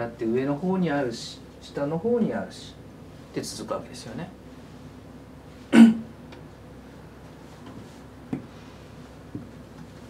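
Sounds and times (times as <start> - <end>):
man coughing: 5.7 - 6.0.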